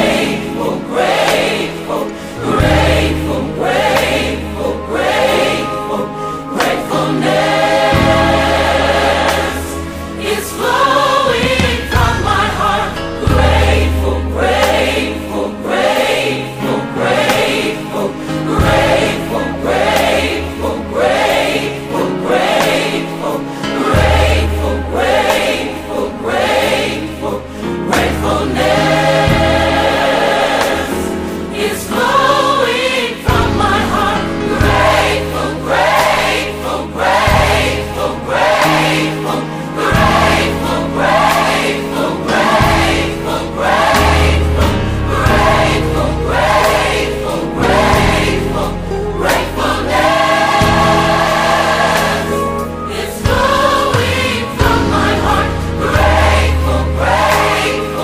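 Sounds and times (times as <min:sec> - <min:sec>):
gospel choir singing: 0:00.0 - 0:58.0
instrumental backing with bass: 0:00.0 - 0:58.0.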